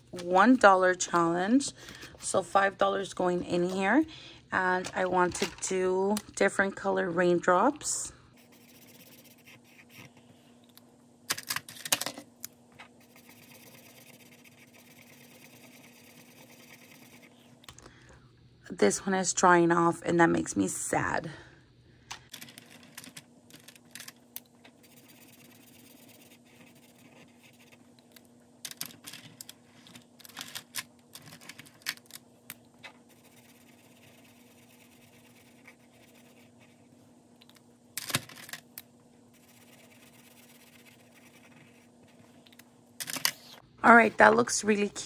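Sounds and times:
faint steady hum: 0.0s - 45.0s
marker scratching on paper: 8.4s - 10.1s, 13.0s - 17.4s, 24.8s - 27.8s, 33.1s - 36.8s, 39.3s - 42.2s.

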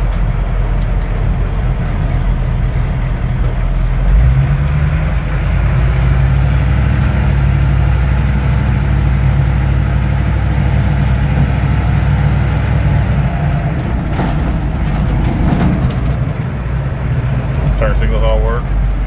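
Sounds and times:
diesel engine low drone: 0.0s - 19.0s
faint rattles: 10.7s - 19.0s.

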